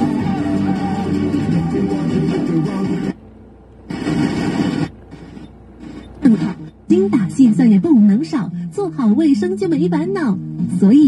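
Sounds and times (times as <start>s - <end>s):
rock music on car radio: 0.0s - 3.2s
burst of radio noise: 3.9s - 6.9s
woman speaking an advertisement: 6.2s - 11.0s.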